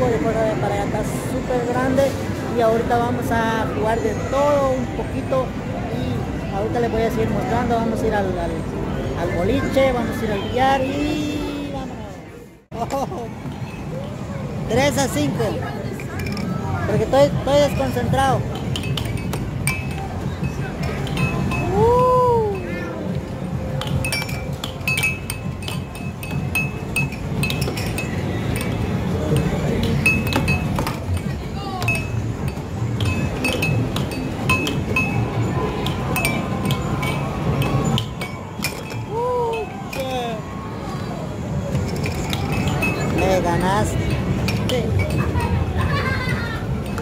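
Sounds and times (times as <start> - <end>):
crowd chatter: 0.0 - 47.0.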